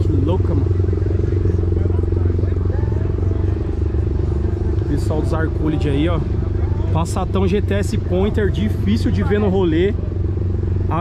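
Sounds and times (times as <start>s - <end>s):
engine running steadily: 0.0s - 11.0s
faint voices: 0.0s - 11.0s.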